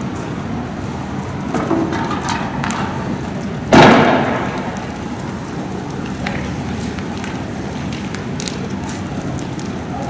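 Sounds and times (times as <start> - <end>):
steady background noise: 0.0 - 10.0
loud bang with echo: 3.7 - 4.7.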